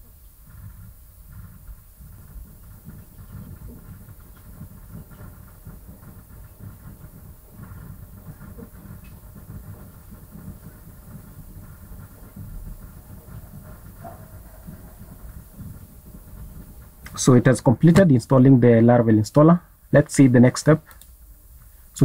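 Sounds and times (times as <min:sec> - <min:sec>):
faint hiss: 0:00.0 - 0:22.0
low rumbling background noise: 0:00.0 - 0:22.0.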